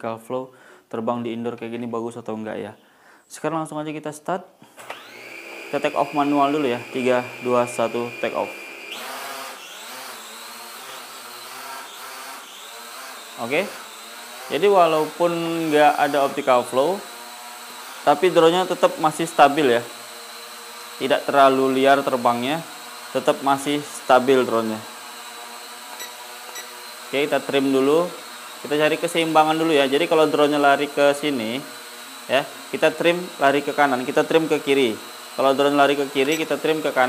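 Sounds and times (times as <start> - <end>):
toy drone propellers buzzing: 4.8 - 37.0.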